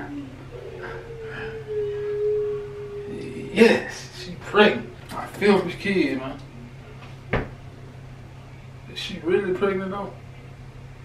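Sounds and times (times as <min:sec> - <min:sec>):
steady pure tone: 0:00.0 - 0:11.0.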